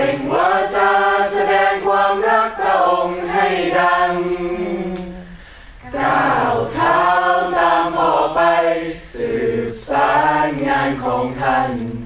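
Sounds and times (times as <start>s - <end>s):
group singing in chorus: 0.0s - 12.0s.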